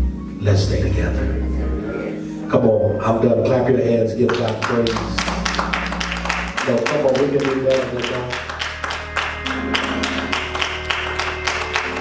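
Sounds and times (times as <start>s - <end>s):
instrumental chords with low bass: 0.0s - 12.0s
congregation clapping hands: 4.2s - 12.0s.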